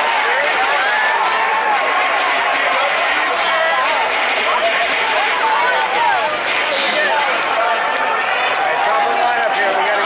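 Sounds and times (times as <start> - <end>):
crowd hubbub: 0.0 - 10.0
spectators talking: 0.0 - 10.0.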